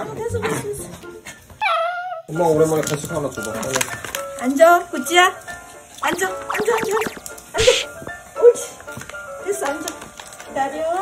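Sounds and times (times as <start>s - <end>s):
puppy whimpering: 1.6s - 2.3s.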